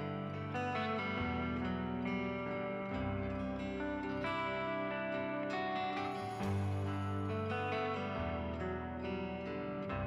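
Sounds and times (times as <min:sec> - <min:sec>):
plucked guitar background music: 0:00.0 - 0:10.0.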